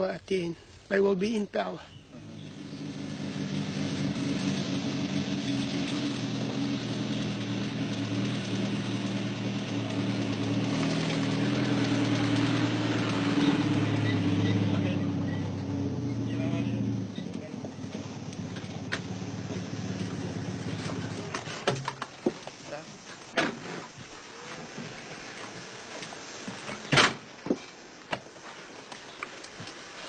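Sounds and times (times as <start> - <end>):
engine running steadily: 2.1 - 22.8.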